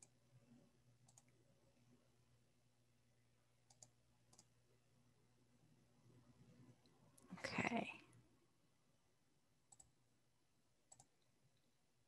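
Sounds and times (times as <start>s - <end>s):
computer mouse clicks: 1.0s - 1.4s, 3.6s - 4.5s, 9.7s - 9.9s, 10.9s - 11.3s.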